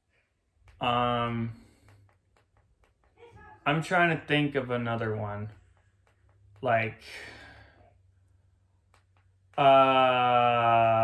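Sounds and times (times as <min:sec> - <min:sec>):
man sighing: 0:09.6 - 0:11.0.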